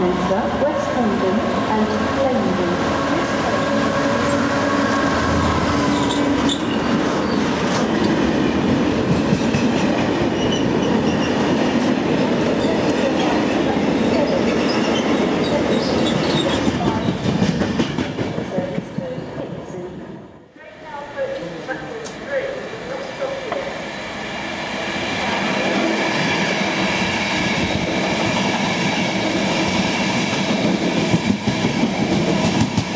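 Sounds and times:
wagons rumbling and rattling on rails: 1.7s - 19.5s
high wheel squeals: 5.6s - 7.4s.

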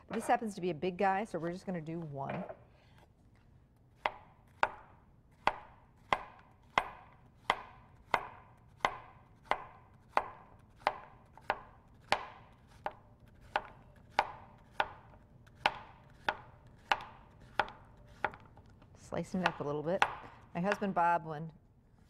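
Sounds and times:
knife chopping on cutting board: 4.0s - 18.6s.

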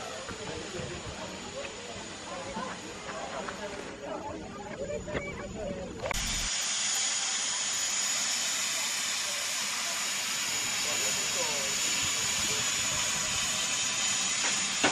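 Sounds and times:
steam locomotive venting steam: 0.0s - 4.0s, 6.0s - 14.9s.

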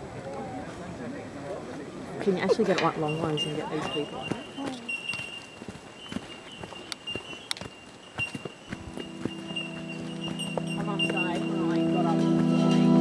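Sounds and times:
footsteps crunching on dirt: 1.6s - 13.0s
held musical chord: 8.8s - 13.0s.

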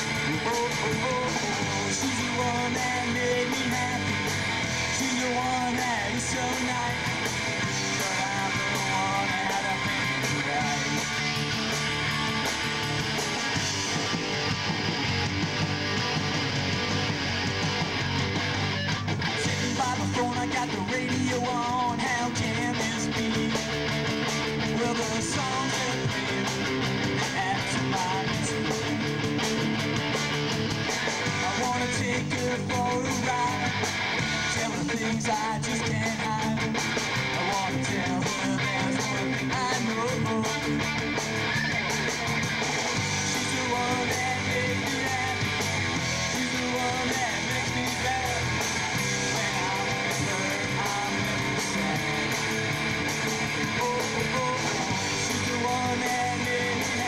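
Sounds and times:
electric guitar lead: 0.0s - 57.0s
live rock band: 0.0s - 57.0s.

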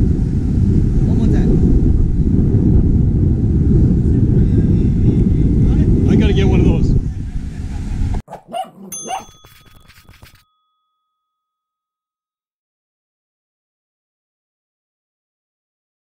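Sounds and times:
wind buffeting microphone: 0.0s - 8.3s
small dog barks: 8.3s - 9.4s
bell-like ding: 8.9s - 12.2s.

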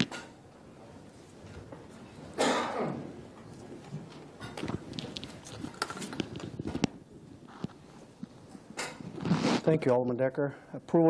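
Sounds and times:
person clearing throat: 2.4s - 3.2s.

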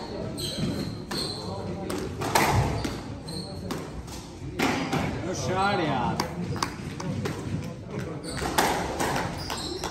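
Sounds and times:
shoe squeak on court floor: 0.0s - 4.2s, 8.1s - 9.9s
squash ball hitting rackets and walls: 0.0s - 5.3s, 6.1s - 9.9s.

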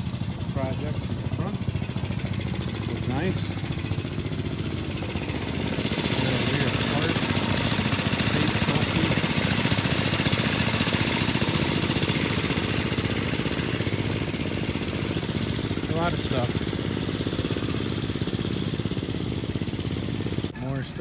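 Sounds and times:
small engine running: 0.0s - 21.0s.

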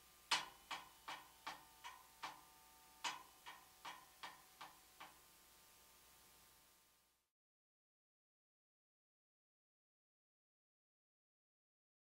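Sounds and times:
mallets striking metal bars: 0.3s - 5.2s.

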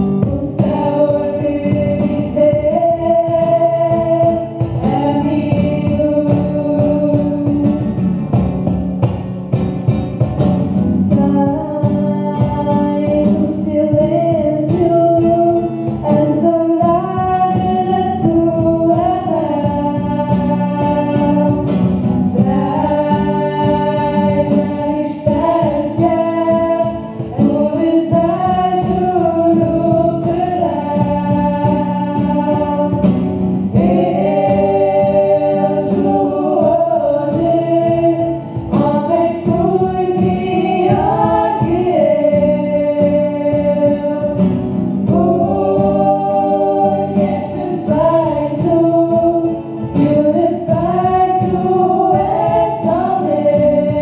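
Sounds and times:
young voices singing in harmony: 0.0s - 8.0s, 11.0s - 54.0s
acoustic guitar: 0.0s - 54.0s
cajon beat: 0.0s - 54.0s.

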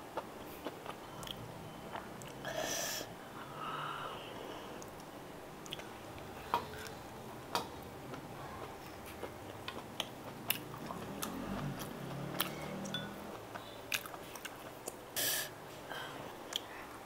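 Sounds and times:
person chewing food: 4.7s - 15.0s.

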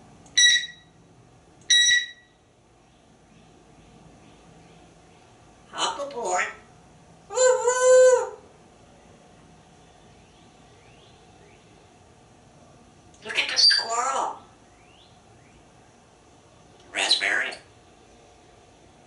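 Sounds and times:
parrot call: 0.4s - 0.9s, 1.7s - 2.3s, 7.3s - 8.4s, 16.9s - 17.6s
small birds chirping: 2.8s - 5.6s, 8.9s - 12.2s, 13.2s - 19.0s
parrot speech-like mumble: 16.9s - 17.6s.

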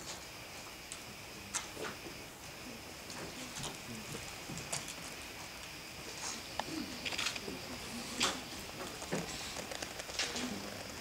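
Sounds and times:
faint low murmurs: 0.9s - 11.0s.

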